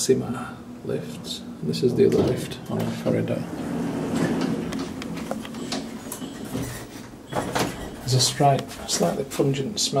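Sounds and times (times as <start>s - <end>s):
passenger lift rumbling: 1.2s - 8.4s.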